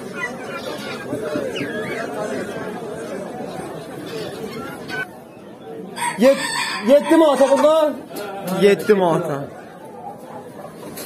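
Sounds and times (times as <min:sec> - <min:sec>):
chickens calling: 0:00.0 - 0:11.0
crowd chatter: 0:00.0 - 0:11.0
roosters crowing: 0:05.9 - 0:08.1.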